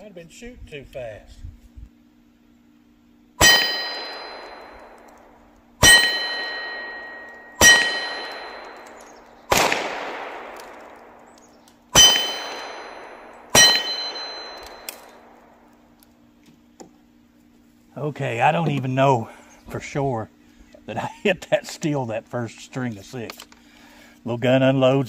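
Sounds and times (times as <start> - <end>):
steel target ringing: 3.4 - 15.7
revolver gunshots: 3.4 - 15.8.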